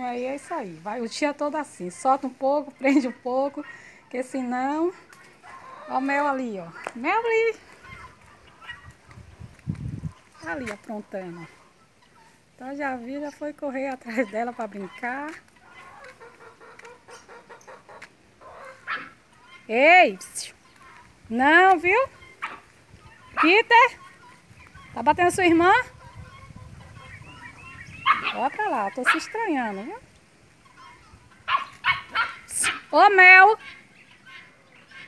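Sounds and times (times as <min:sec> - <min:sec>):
chickens clucking: 0:00.0 - 0:35.0
puppies barking and yapping: 0:05.0 - 0:12.4, 0:14.1 - 0:19.7, 0:21.9 - 0:29.6, 0:30.6 - 0:35.0
chicken cry: 0:05.1 - 0:09.3, 0:14.1 - 0:29.9, 0:30.6 - 0:35.0.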